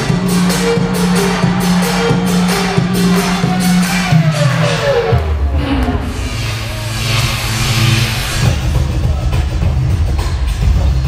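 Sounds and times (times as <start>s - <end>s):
loud hiss: 6.1s - 9.1s.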